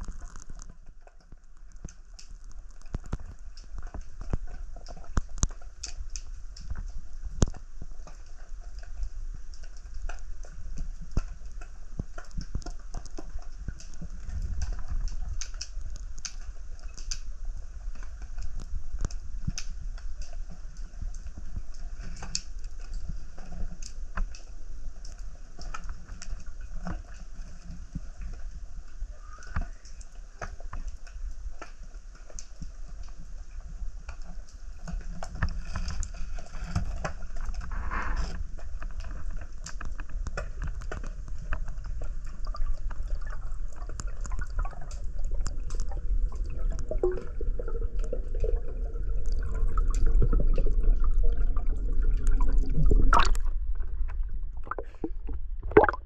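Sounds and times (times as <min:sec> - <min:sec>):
small crackling clicks: 0:00.0 - 0:55.9
low rumble: 0:45.8 - 0:56.0.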